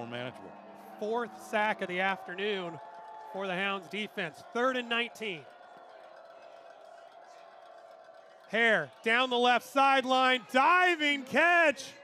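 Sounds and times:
faint stadium ambience: 0.0s - 12.0s.

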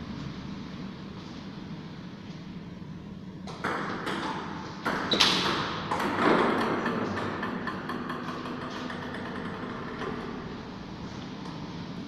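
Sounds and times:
loud long noise echoing: 2.7s - 12.0s.

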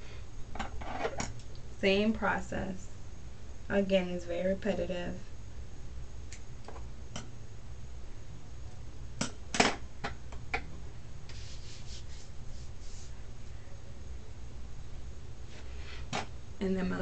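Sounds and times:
steady low hum: 0.0s - 17.0s
hair rustling: 11.3s - 13.2s.

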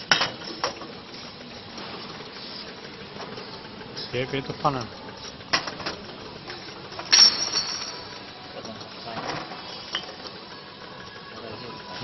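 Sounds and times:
machine and workshop noise: 0.0s - 12.0s
glass bottles clinking: 7.0s - 8.2s.

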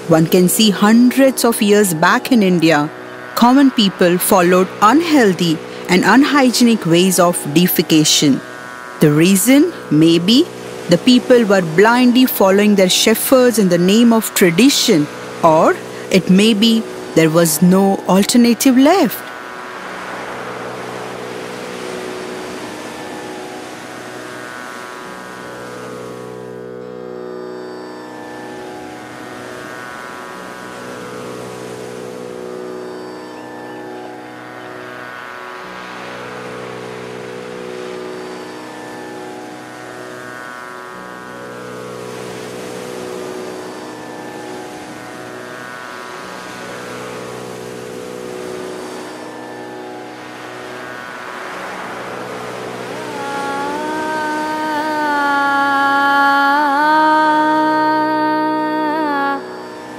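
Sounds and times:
tanpura drone: 0.0s - 59.9s.

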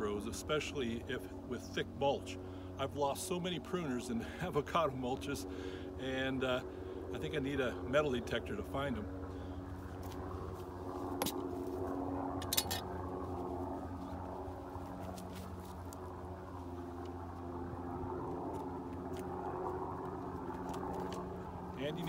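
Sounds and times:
distant engine drone: 0.0s - 22.0s.

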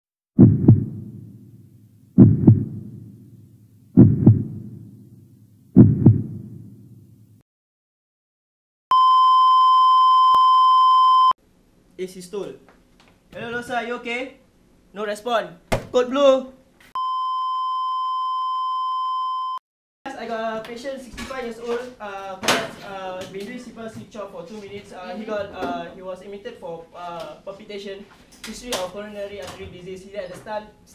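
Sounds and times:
heartbeat thumps: 0.4s - 1.4s, 2.2s - 3.2s, 4.0s - 5.0s, 5.8s - 6.8s
steady electronic beep tone: 8.9s - 11.4s, 17.0s - 19.6s.

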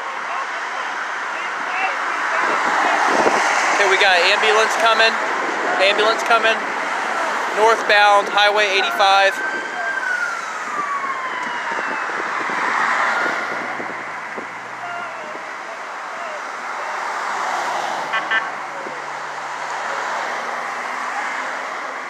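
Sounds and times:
highway traffic passing: 0.0s - 22.0s
emergency siren winding down: 4.1s - 16.9s.

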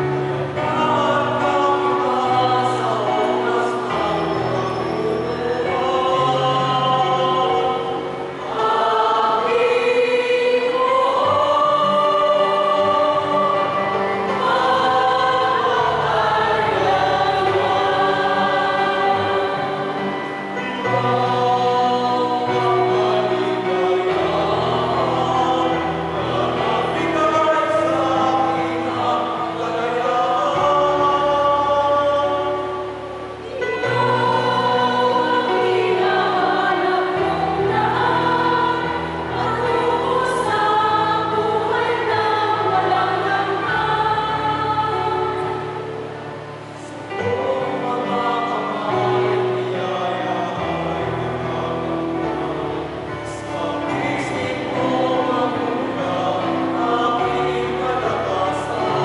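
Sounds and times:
mixed choir singing a hymn: 0.0s - 59.0s.

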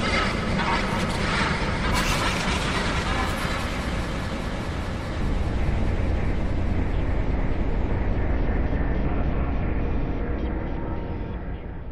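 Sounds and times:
loud low rumbling noise: 4.0s - 10.8s.

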